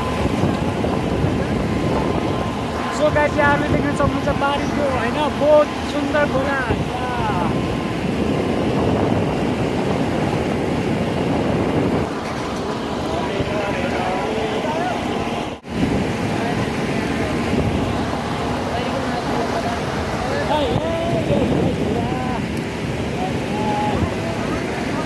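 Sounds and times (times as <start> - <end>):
vehicle engine and road noise: 0.0 - 25.0
wind on microphone: 0.0 - 25.0
faint passenger voices: 12.2 - 15.6, 16.2 - 25.0.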